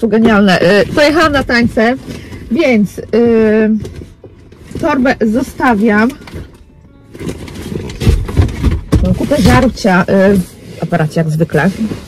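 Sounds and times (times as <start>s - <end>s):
bag rustling: 0.0s - 12.0s.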